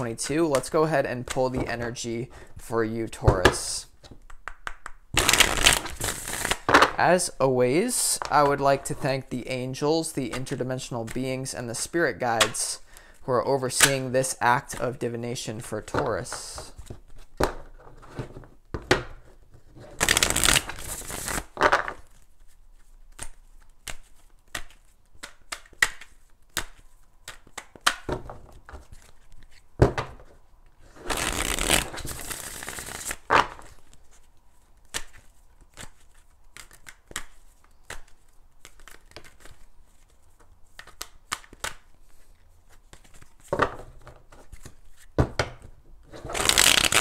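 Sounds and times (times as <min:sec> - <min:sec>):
cards being shuffled: 0:03.2 - 0:07.0, 0:19.9 - 0:45.2, 0:46.1 - 0:47.0
sharp card clicks: 0:46.4 - 0:47.0.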